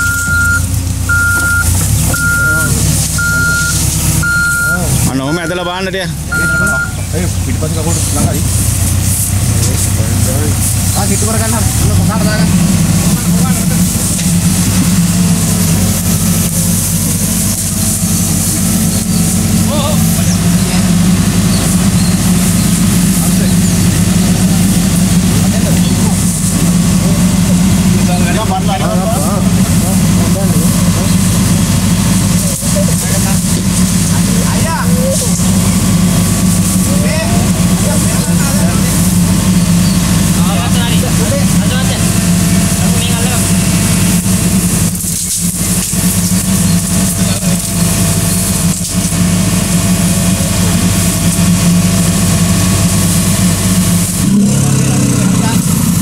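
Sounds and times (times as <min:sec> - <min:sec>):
diesel engine idling: 0:00.0 - 0:56.0
faint men's voices: 0:01.1 - 0:56.0.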